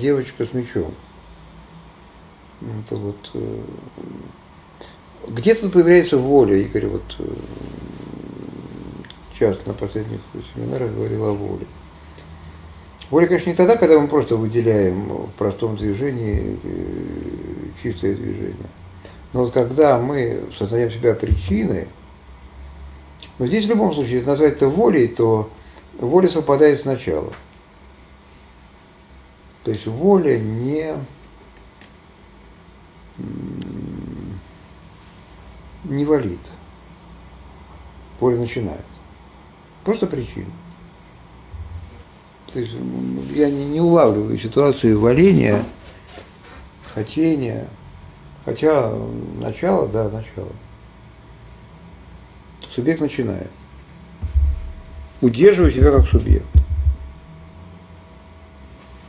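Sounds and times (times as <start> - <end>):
person talking: 2.6 - 4.4, 5.2 - 11.7, 13.0 - 18.8, 19.4 - 22.0, 41.6 - 45.8, 54.2 - 57.0
man humming wordlessly: 42.6 - 43.5.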